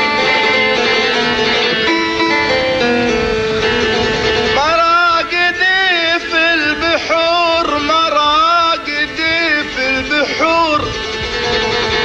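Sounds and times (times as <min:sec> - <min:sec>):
plucked string instrument: 0:00.0 - 0:12.0
person singing folk song: 0:04.1 - 0:12.0.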